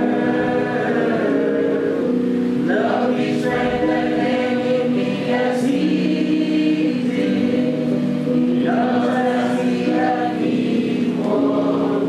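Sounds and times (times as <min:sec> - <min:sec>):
group singing slow hymn: 0:00.0 - 0:12.0.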